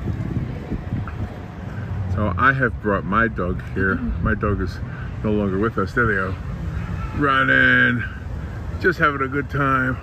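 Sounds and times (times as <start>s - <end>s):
wind buffeting microphone: 0.0s - 2.2s.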